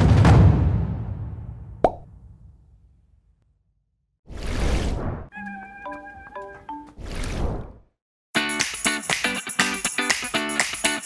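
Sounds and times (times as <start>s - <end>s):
rumbling drum roll: 0.0s - 2.6s.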